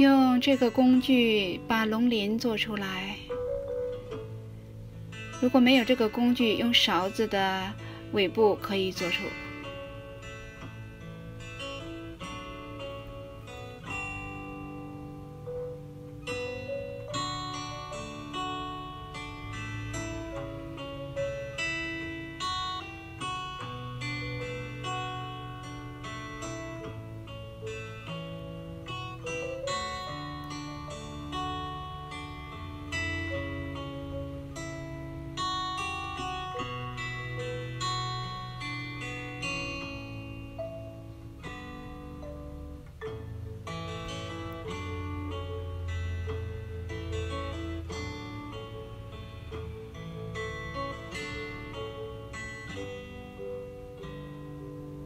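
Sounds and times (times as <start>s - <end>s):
plucked guitar melody: 0.0s - 55.0s.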